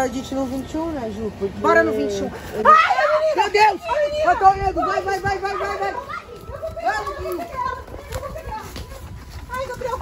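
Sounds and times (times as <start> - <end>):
footsteps on leaves and earth: 0.0 - 10.0
children shouting and squealing: 1.6 - 10.0.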